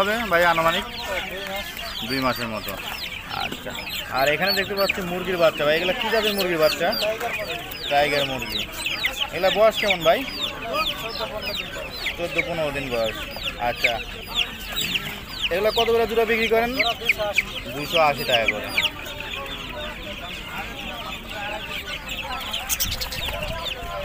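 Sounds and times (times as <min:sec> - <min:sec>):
chicks peeping: 0:00.0 - 0:24.0.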